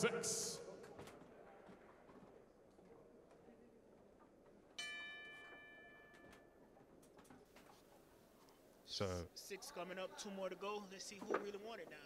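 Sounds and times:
boxing ring bell ringing: 4.8s - 6.6s.

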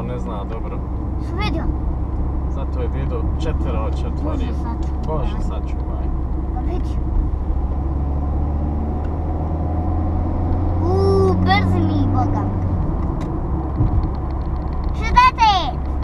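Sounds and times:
car cabin engine rumble: 0.0s - 16.0s
child's voice: 1.3s - 1.7s, 6.6s - 7.0s, 10.8s - 12.6s, 15.0s - 15.8s.

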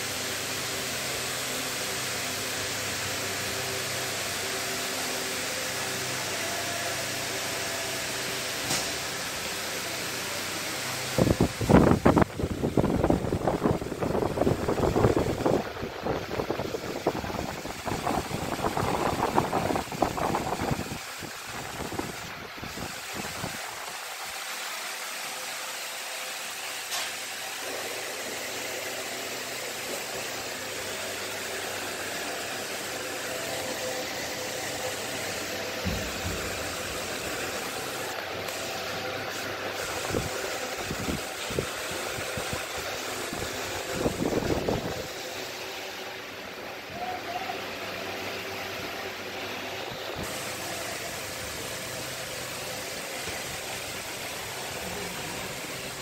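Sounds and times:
machine humming and hissing: 0.0s - 56.0s.

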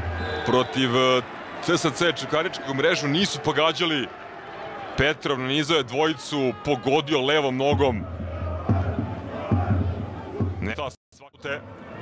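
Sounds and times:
stadium crowd voices: 0.0s - 12.0s.

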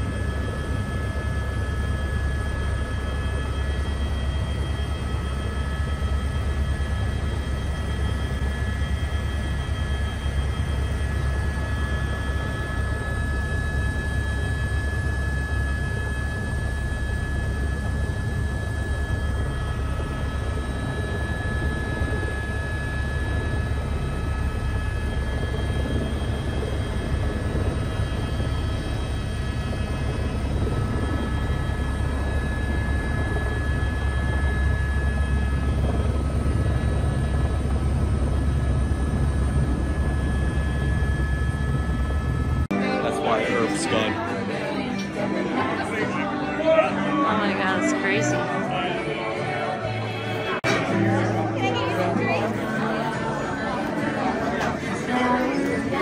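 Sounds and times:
helicopter rotor and engine drone: 0.0s - 56.0s
high turbine whine: 0.0s - 56.0s.

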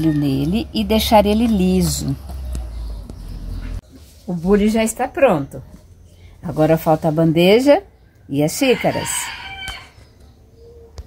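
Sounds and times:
rooster crowing: 8.6s - 10.0s.

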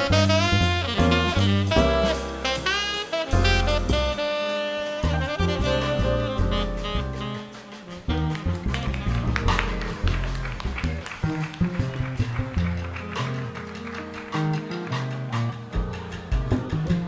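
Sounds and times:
low bass line: 0.0s - 4.3s, 4.9s - 7.4s, 8.1s - 13.5s
drums and cymbals: 0.0s - 17.0s
jazz band playing: 0.0s - 17.0s.

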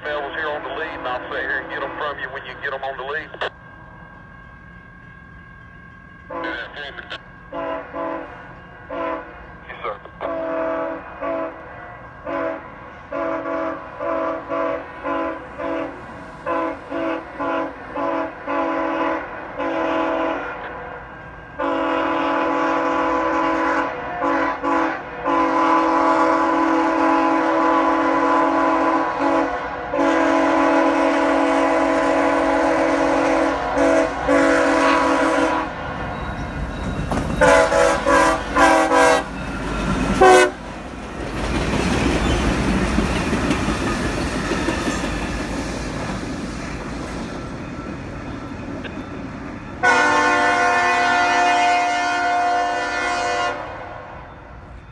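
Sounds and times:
train rumbling past: 0.0s - 54.9s
locomotive air horn blasts: 6.3s - 6.9s, 7.5s - 9.4s, 10.2s - 21.0s, 21.6s - 35.8s, 37.4s - 39.4s, 40.2s - 40.7s, 49.8s - 54.3s
wheels clicking over rail joints: 36.0s - 37.5s, 39.3s - 49.3s.

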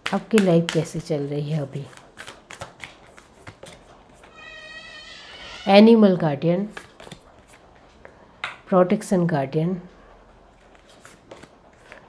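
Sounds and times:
cards being shuffled: 0.0s - 4.3s, 6.7s - 7.6s, 10.6s - 12.0s.

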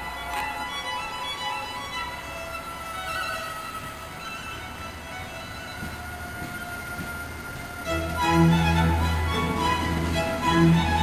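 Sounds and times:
faint violin music: 0.0s - 11.0s
train wheels rumbling on rails: 0.0s - 11.0s.

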